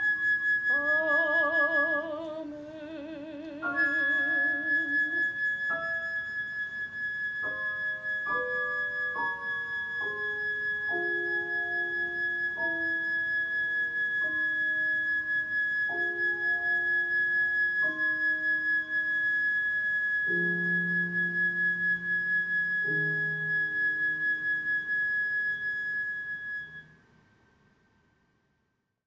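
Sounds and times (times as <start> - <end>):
flute holding a high note: 0.0 - 2.4, 3.5 - 27.0
clarinet horn and piano chords: 0.0 - 26.9.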